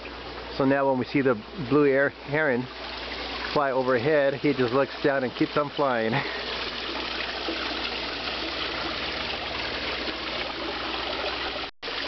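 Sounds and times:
waterfall splashing into pond: 0.0 - 12.0.

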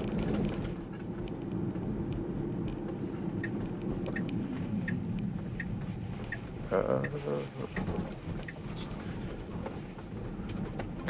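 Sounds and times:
car cabin rumble: 0.0 - 11.0
turn signal ticking: 0.0 - 11.0.

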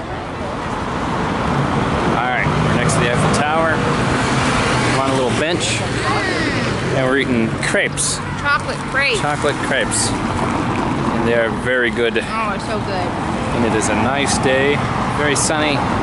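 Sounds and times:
vehicle engine humming: 0.0 - 16.0
people talking: 2.2 - 3.8, 5.0 - 10.1, 11.2 - 15.8.

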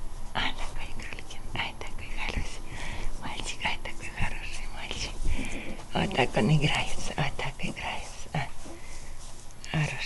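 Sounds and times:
rustling on a blanket: 0.0 - 10.0.

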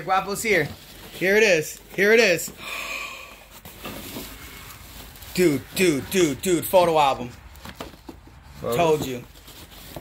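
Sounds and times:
cardboard box and paper rustling: 0.0 - 2.6, 3.5 - 10.0.

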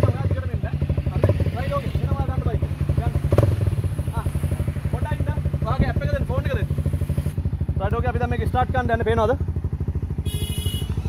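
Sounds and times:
dirt bike engine idling: 0.0 - 11.0.

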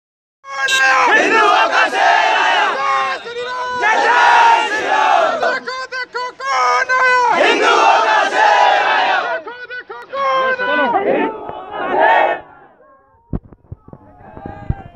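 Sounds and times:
crowd of men shouting slogans: 0.6 - 12.8.

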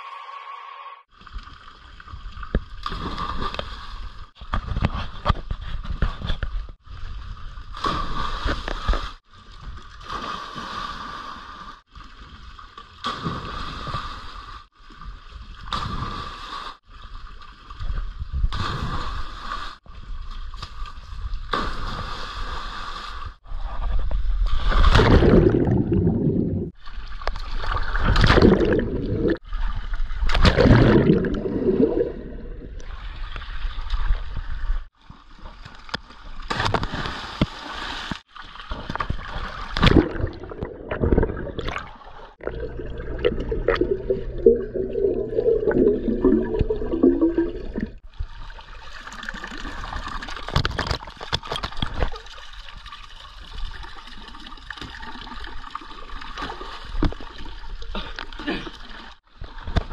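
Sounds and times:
underwater bubbling and gurgling: 23.4 - 35.7, 38.6 - 59.9
splashing into pool: 24.6 - 26.7.

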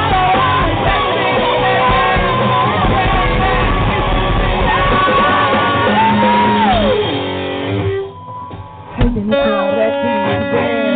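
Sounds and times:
live rock band playing: 0.0 - 10.9.

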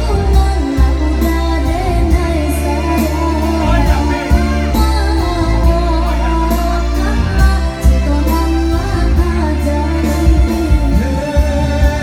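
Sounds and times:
bass line: 0.0 - 12.0
electronic keyboard backing: 0.0 - 12.0
person singing: 0.0 - 12.0
steady beat: 3.0 - 8.4.

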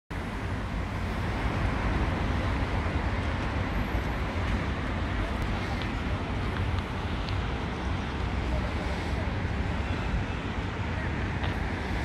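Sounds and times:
city traffic rumble: 0.1 - 12.0.

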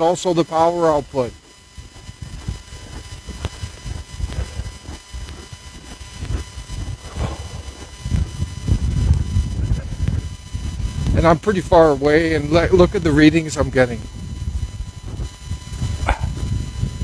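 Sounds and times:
footsteps crunching through snow: 0.0 - 17.0
low rumbling on microphone: 1.3 - 17.0.

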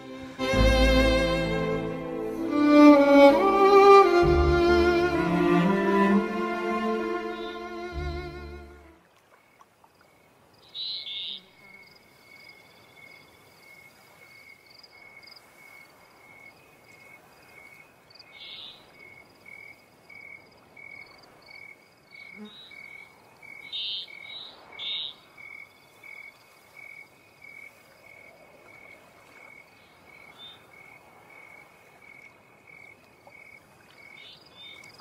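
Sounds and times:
insect chirping: 9.5 - 35.0.

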